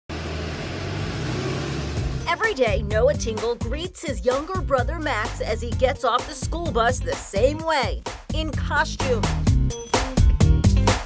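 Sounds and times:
bus engine droning: 0.1s - 3.1s.

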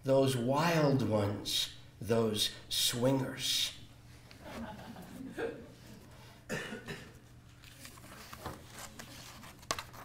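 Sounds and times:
person coughing: 6.5s - 7.2s.

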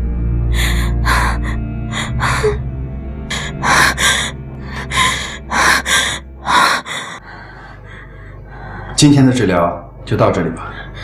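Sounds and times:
low music drone: 0.0s - 11.0s.

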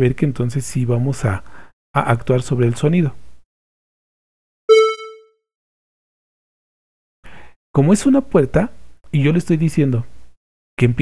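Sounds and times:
short gated note: 4.7s - 5.2s.

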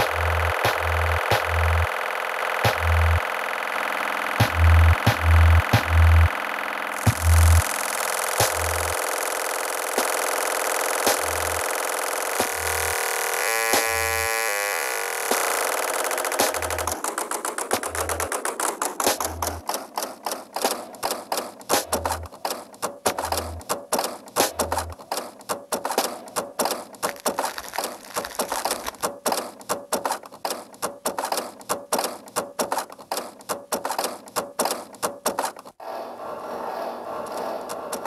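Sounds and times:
low bass pulses: 0.0s - 1.9s, 2.7s - 3.2s, 4.4s - 6.3s, 7.1s - 7.6s
rapid clattering clicks: 0.0s - 12.6s, 15.2s - 35.8s.

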